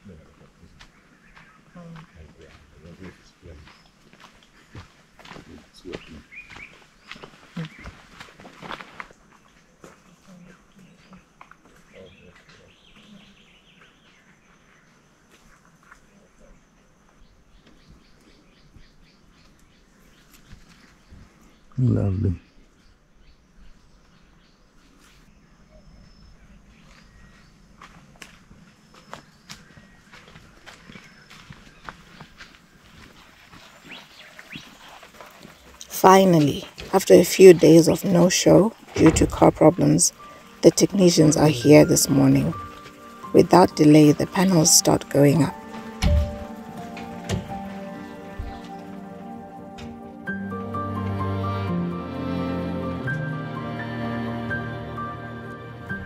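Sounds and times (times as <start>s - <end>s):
birds chirping: 0.0s - 51.7s
footsteps crunching on dirt: 0.4s - 13.2s, 26.6s - 40.6s, 41.7s - 43.4s, 45.0s - 49.3s.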